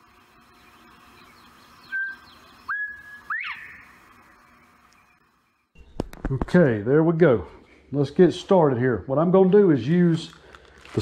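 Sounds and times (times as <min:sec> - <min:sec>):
distant bird chirping: 0:00.0 - 0:10.0
bird whistled call: 0:01.2 - 0:04.0.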